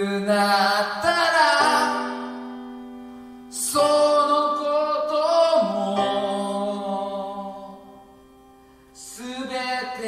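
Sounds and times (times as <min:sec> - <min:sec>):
man singing long held notes: 0:00.0 - 0:02.4, 0:03.5 - 0:08.0.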